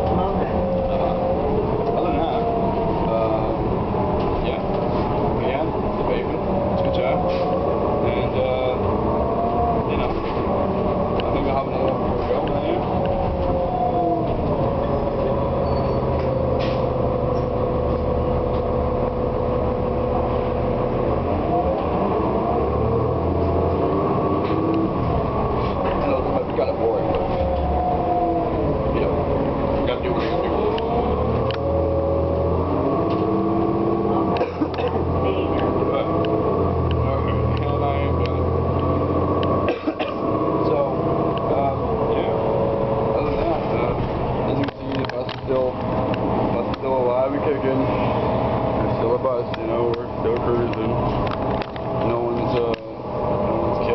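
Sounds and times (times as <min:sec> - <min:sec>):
bus engine whine: 0:00.0 - 0:53.9.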